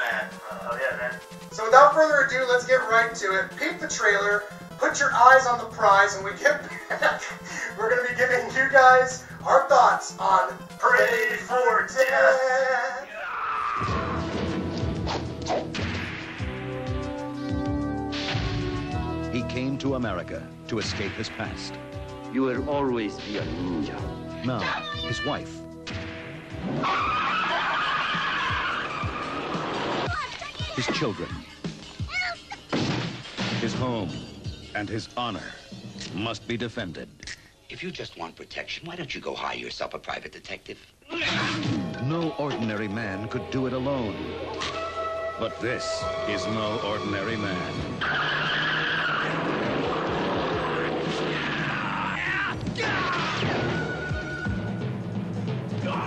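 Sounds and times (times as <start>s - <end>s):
music: 0.0s - 38.0s, 41.1s - 56.0s
car tyres screeching: 47.8s - 51.6s.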